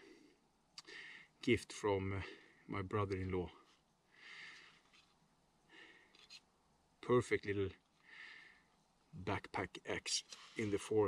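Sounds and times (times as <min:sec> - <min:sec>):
man breathing softly: 0:00.0 - 0:01.4, 0:04.1 - 0:06.3, 0:07.9 - 0:08.8.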